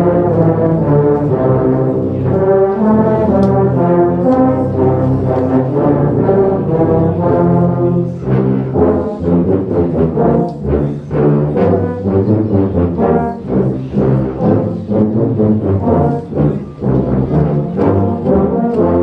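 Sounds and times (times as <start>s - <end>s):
tubas and euphoniums playing carol: 0.0s - 19.0s.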